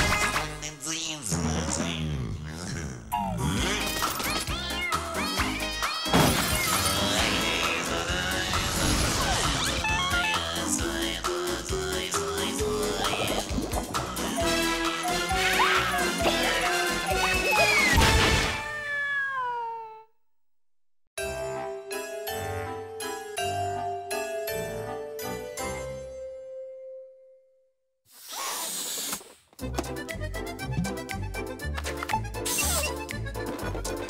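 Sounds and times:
cartoon theme music: 3.2s - 18.7s, 29.6s - 34.0s
cartoon cat wail: 9.1s - 10.4s, 15.2s - 20.1s
comic character voice noises: 14.4s - 18.0s.

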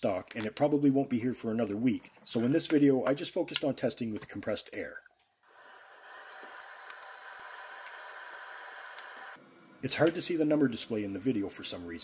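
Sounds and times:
cooling fan hissing: 5.5s - 11.8s.

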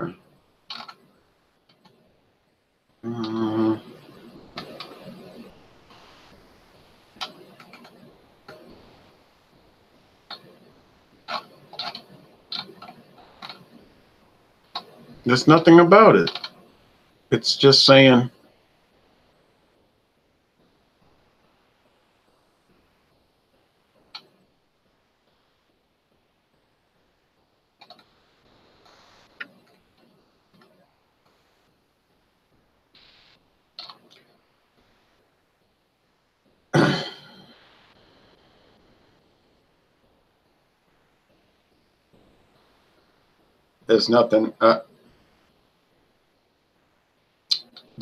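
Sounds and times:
computer mouse clicks: 0.7s - 1.0s, 27.8s - 28.1s, 33.8s - 34.3s.

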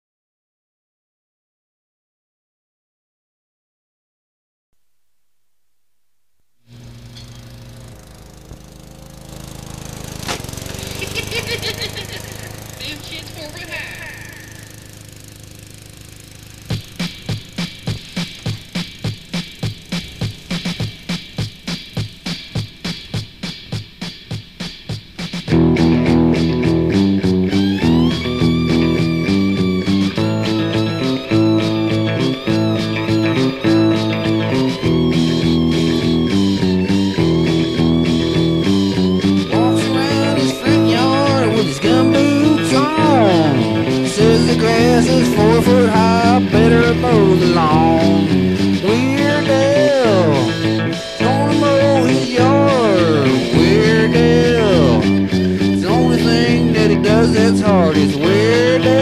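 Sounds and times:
bass guitar: 6.7s - 59.0s
electric guitar chords: 6.7s - 59.0s
lawn mower engine chugging: 6.7s - 59.0s
drum beat: 6.8s - 15.0s, 16.1s - 36.4s, 39.4s - 55.2s
melody line with bending notes: 25.5s - 59.0s.

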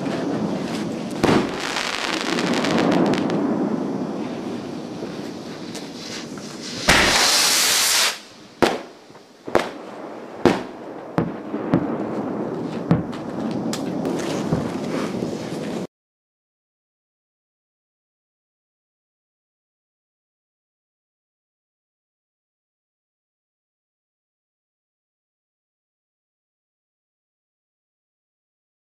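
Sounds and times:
fireworks bangs: 0.0s - 15.9s
fireworks crackle: 0.0s - 15.9s.

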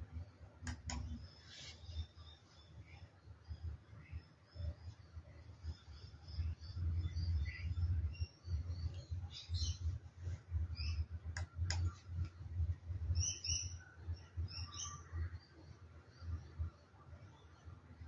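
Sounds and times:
sharp clicks: 0.6s - 1.2s
birds chirping: 1.0s - 10.0s, 13.1s - 15.5s.

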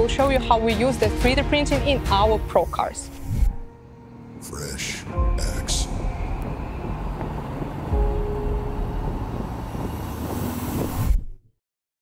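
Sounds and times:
dense low rumble: 1.3s - 11.4s
rising whoosh: 3.0s - 11.4s
deep bass hit: 5.1s - 11.4s.

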